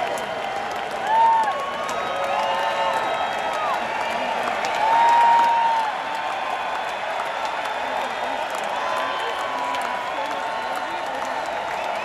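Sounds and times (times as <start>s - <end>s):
crowd applauding and cheering: 0.0s - 12.0s
fans whooping: 0.0s - 12.0s.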